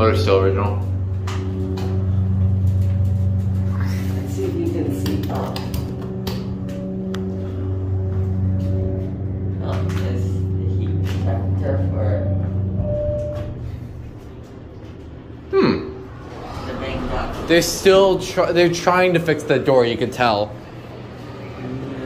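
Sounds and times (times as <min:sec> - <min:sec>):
elevator hum: 0:00.0 - 0:22.0.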